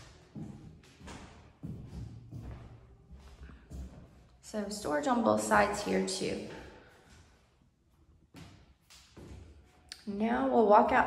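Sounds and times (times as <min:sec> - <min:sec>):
footsteps on hardwood floor: 0:00.0 - 0:07.4.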